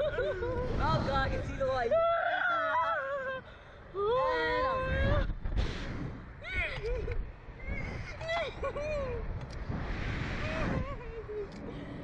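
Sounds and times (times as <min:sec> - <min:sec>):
wind buffeting microphone: 0:00.0 - 0:02.0, 0:03.9 - 0:12.0.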